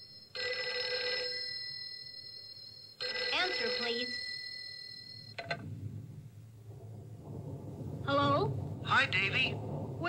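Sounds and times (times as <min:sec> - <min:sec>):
rotary telephone ringing: 0:00.0 - 0:05.6
low rumble through speakers: 0:05.4 - 0:10.0.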